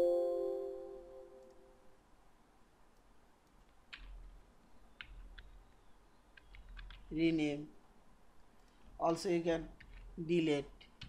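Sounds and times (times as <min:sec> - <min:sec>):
computer keyboard keystrokes: 0:03.5 - 0:04.3, 0:05.0 - 0:05.6, 0:06.3 - 0:07.1, 0:09.8 - 0:10.1.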